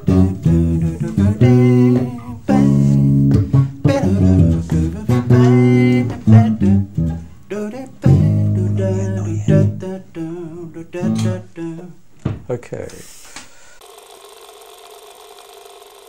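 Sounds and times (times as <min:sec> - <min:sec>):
bass guitar plucked notes: 0:00.0 - 0:11.5.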